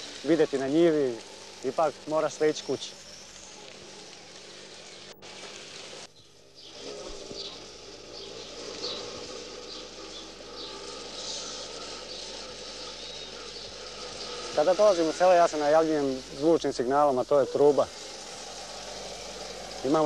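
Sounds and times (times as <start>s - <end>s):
low steady drone: 0.0s - 20.0s
steady hiss: 0.0s - 20.0s.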